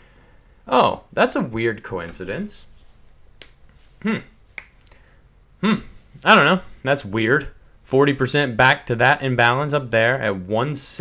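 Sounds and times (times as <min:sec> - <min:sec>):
man murmuring hmm: 0:04.0 - 0:04.4, 0:05.6 - 0:06.1.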